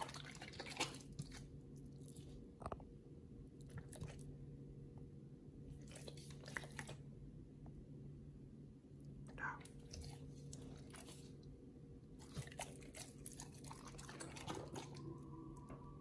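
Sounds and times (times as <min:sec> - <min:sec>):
low steady hum: 0:00.0 - 0:16.0
dog chewing raw meat: 0:12.1 - 0:15.2.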